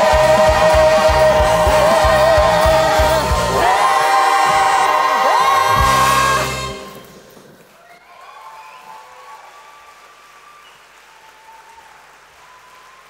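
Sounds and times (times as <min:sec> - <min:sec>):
audience applauding: 0:00.0 - 0:13.0
faint cheering calls: 0:03.6 - 0:13.0.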